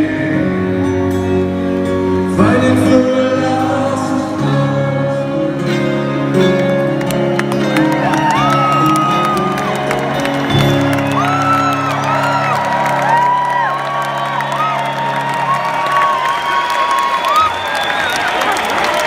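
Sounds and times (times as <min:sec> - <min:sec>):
crowd cheering and whooping: 0:07.1 - 0:19.0.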